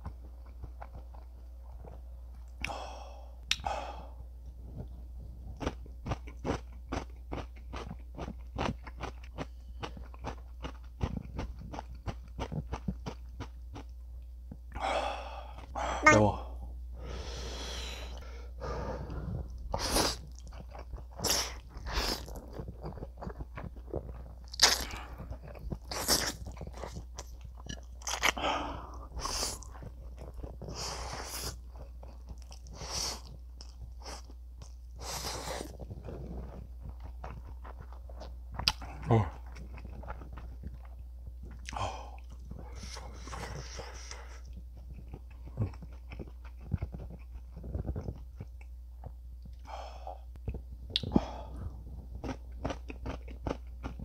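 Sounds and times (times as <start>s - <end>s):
wet chewing: 5.6s - 14.0s, 19.1s - 49.7s, 50.4s - 54.0s.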